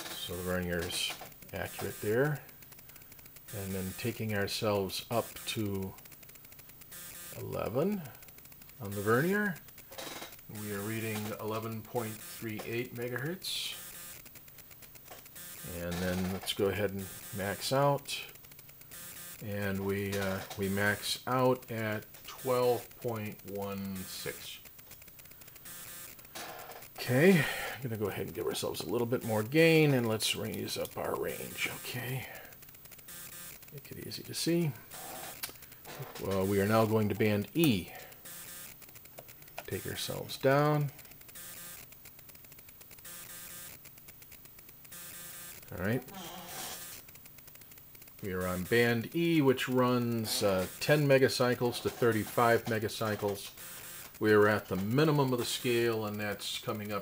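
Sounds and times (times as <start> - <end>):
person speaking: 0.0 - 2.6, 3.5 - 6.0, 7.3 - 8.2, 8.8 - 9.7, 10.4 - 14.0, 15.6 - 18.4, 19.4 - 24.7, 26.9 - 32.6, 33.7 - 35.0, 35.9 - 38.3, 39.5 - 41.1, 45.6 - 47.0, 48.2 - 57.0
electrical static crackling: 0.0 - 57.0
rapid light clicking: 0.0 - 57.0
steady electrical buzz: 0.0 - 57.0.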